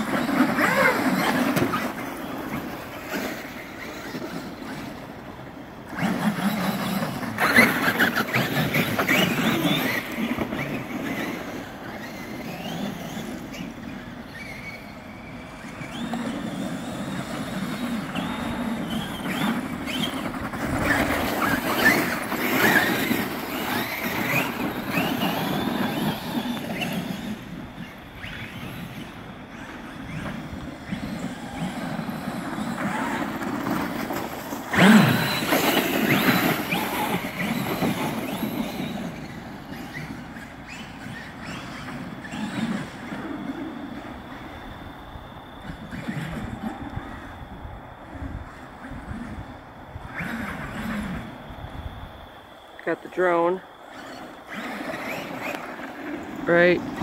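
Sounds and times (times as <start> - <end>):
tyres churning through slushy snow: 0.0 - 14.8, 15.4 - 44.2, 52.8 - 57.0
electric motors whining: 0.0 - 57.0.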